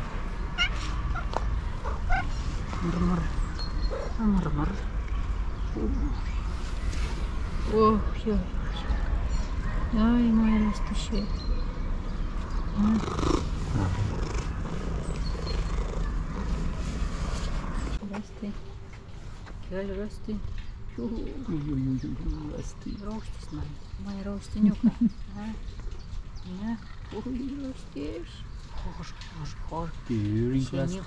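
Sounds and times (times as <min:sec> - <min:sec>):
cat purring: 0:12.8 - 0:18.6.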